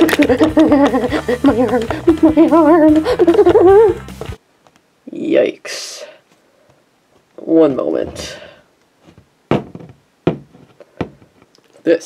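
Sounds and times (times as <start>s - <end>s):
sharp knocks: 9.5s - 11.2s.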